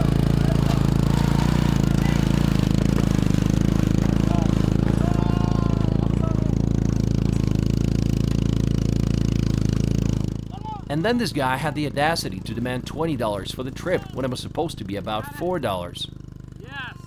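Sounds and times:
small motorcycle engine revving: 0.0 - 17.0.

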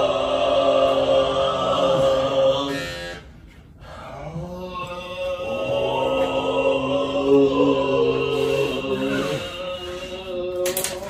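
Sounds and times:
overtone chanting: 0.0 - 11.0.

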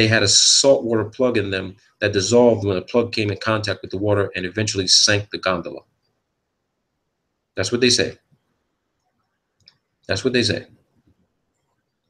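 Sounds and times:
man's voice: 0.0 - 5.8.

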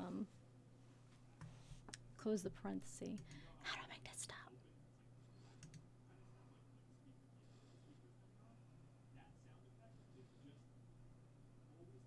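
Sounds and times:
computer mouse clicks: 5.6 - 5.8.

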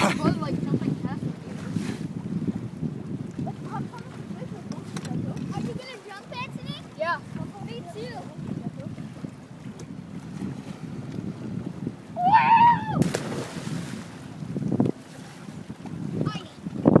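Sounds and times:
wind rumble on microphone: 0.0 - 17.0
person whooping: 12.2 - 13.0
splash into water: 12.9 - 14.2.

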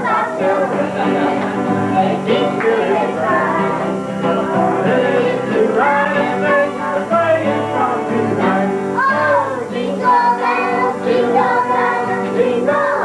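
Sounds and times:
acoustic guitar strummed: 0.0 - 13.0
electric guitar: 0.0 - 13.0
man singing: 0.0 - 13.0
people singing along: 0.0 - 13.0.

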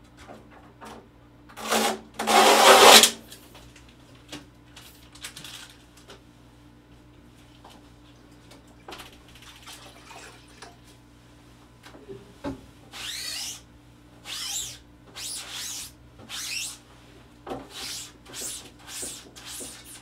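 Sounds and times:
soft water sounds: 7.4 - 11.0
sponge rubbing on screen mesh: 14.4 - 16.8.

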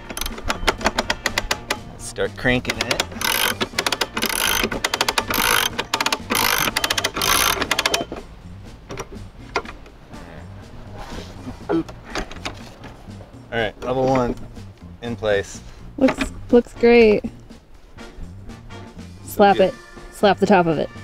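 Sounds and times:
winch ratchet clicking: 0.0 - 1.8, 2.6 - 8.2.

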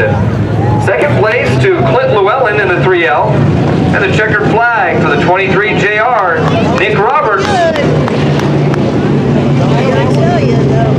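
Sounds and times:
race car engines droning: 0.0 - 10.9
loudspeaker voice: 4.0 - 7.9.

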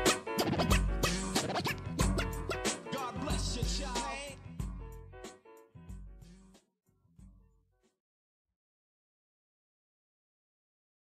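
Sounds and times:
turntable scratching: 0.0 - 4.4
hip hop beat of drums and bass: 0.0 - 7.3.

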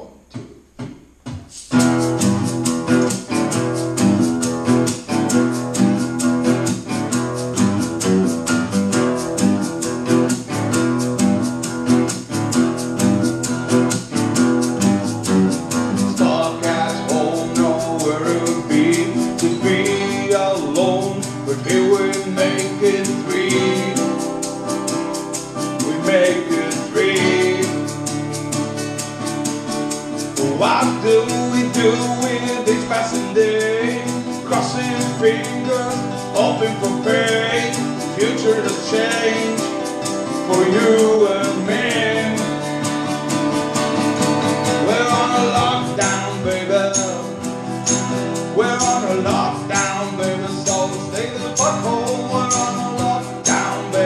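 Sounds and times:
acoustic guitars strumming: 0.0 - 54.0
man singing: 16.0 - 24.8, 25.4 - 28.1, 30.4 - 42.9, 44.6 - 54.0.

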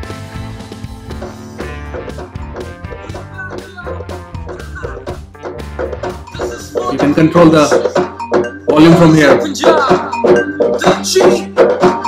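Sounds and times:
music from portable speaker: 0.0 - 12.0.

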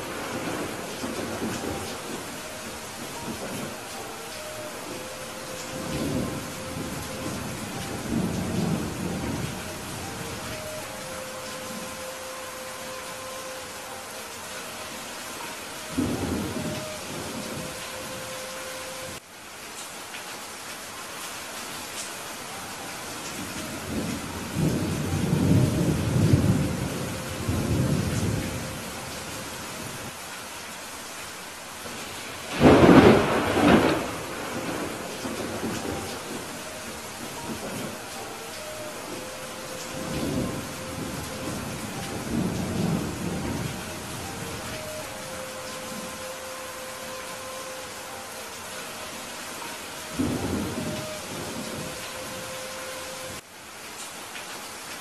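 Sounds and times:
thunder rumbling: 0.0 - 19.2, 23.4 - 30.0, 31.8 - 53.4
steady rain falling: 0.0 - 55.0.

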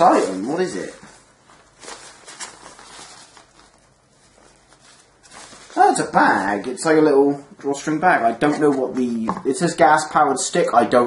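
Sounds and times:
fabric bag rustling: 0.0 - 6.2.

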